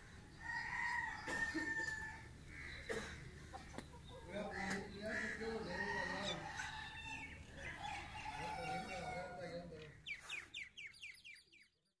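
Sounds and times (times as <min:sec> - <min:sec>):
fowl wavering calls: 0:00.4 - 0:09.6.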